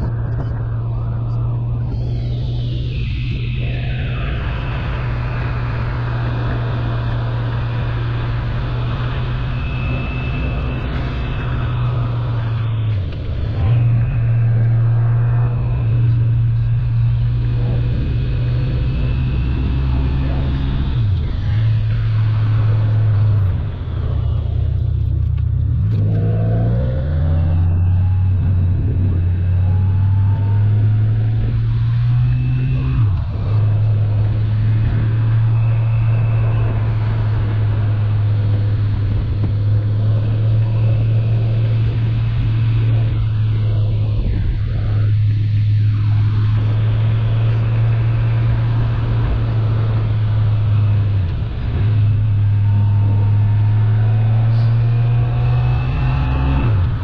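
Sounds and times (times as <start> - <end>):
wind noise: 0.0 - 57.0.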